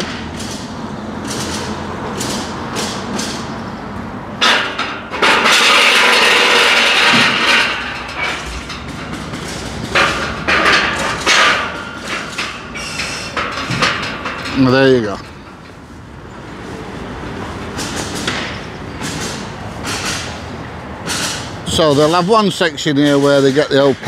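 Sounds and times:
metal gate knocking and rattling: 4.4s - 15.8s
metal gate scraping: 4.4s - 16.0s.

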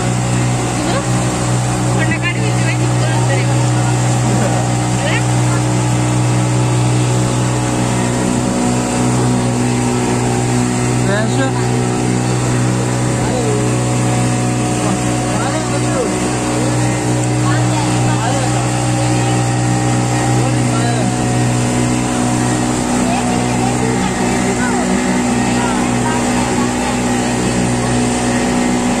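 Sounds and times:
motorboat engine drone: 0.0s - 29.0s
passengers chattering: 0.1s - 29.0s.

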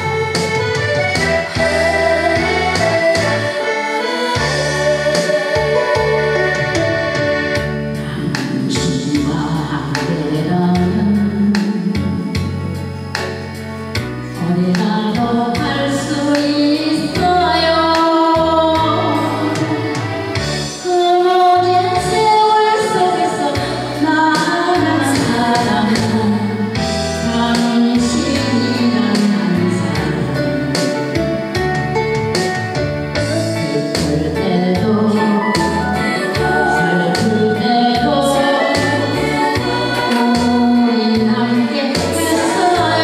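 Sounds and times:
instrumental backing with beat: 0.0s - 43.0s
woman singing into a microphone: 1.2s - 13.4s, 14.0s - 31.2s, 33.1s - 43.0s.

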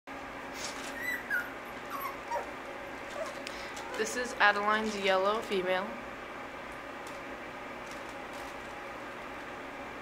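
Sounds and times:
puppy whimpering: 0.6s - 4.1s.

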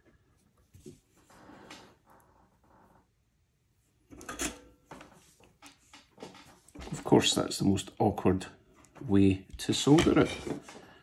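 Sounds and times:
faint clicks and rustles: 4.2s - 7.2s.

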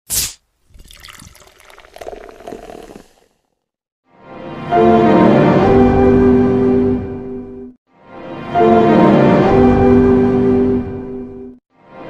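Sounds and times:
pitch-shifted pouring liquid: 0.6s - 3.7s.

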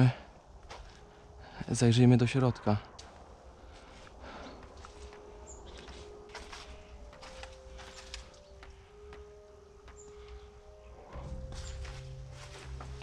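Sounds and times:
faint background music: 0.0s - 13.0s
footsteps crunching through dry leaves: 3.0s - 9.1s, 11.2s - 13.0s.

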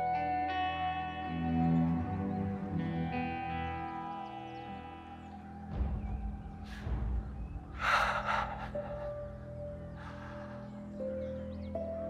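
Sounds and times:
soft background music: 0.0s - 12.0s
man breathing sharply: 6.6s - 11.1s.

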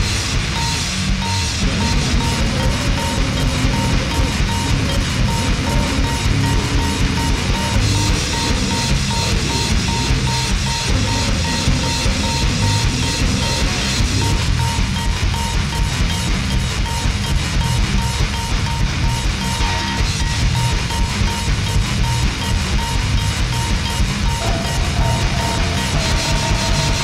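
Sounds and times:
distorted heavy metal music: 0.0s - 27.0s
high tone cutting out: 0.0s - 27.0s.

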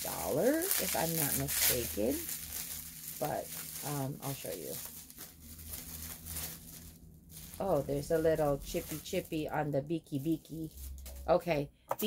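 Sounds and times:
bubble wrap rustling and crinkling: 0.0s - 11.6s.

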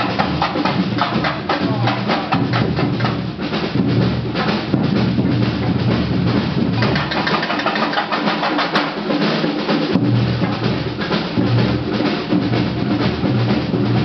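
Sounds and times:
deep bass drum strokes: 0.0s - 7.7s
percussion band drumming: 0.0s - 14.0s.

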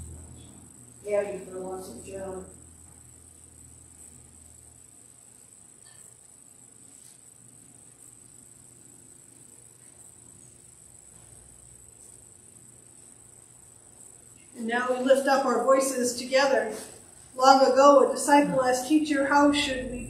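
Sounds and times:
low hum: 0.0s - 6.1s, 13.2s - 20.0s
steady high-pitched hiss: 0.0s - 20.0s.

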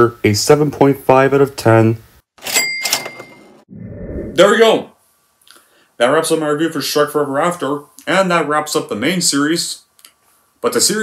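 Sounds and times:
cash register ka-ching: 2.4s - 3.6s
low sound: 3.7s - 4.5s.

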